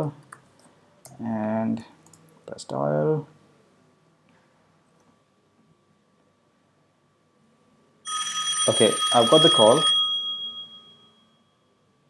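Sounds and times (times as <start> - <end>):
bell-like phone ringtone: 8.0 - 11.7.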